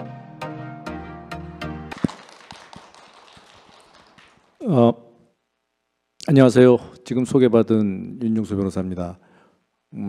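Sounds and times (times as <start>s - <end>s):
audience applause in a hall: 1.9s - 4.8s.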